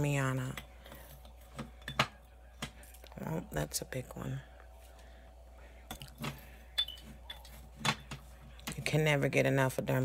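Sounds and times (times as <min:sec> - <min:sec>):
metal spoon clinking on glass jar: 0:06.8 - 0:07.5.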